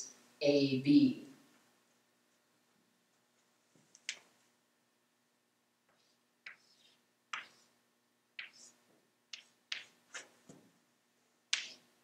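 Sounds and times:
chalk writing on blackboard: 5.9s - 7.8s, 8.4s - 10.4s.

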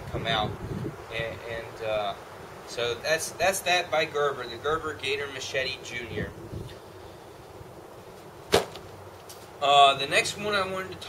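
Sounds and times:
sheathed machete put down: 8.5s - 8.8s.

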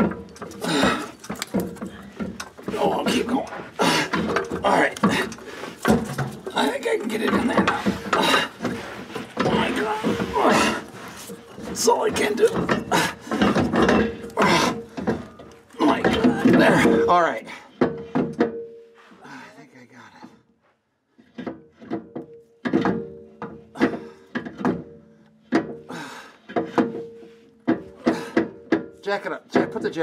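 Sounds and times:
metal knocks and clunks: 0.0s - 18.9s, 21.2s - 30.0s.

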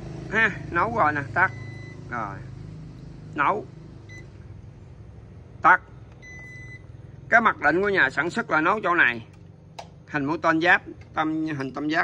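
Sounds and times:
low steady hum: 0.0s - 12.0s
rice cooker beep: 1.5s - 2.0s, 6.2s - 6.9s.

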